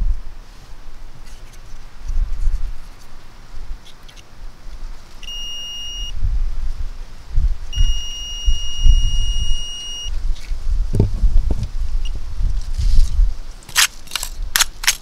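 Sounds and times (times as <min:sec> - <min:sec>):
low rumbling on microphone: 0:00.0 - 0:02.9, 0:06.1 - 0:13.5
high-pitched buzzer beeps: 0:05.2 - 0:06.2, 0:07.8 - 0:10.1.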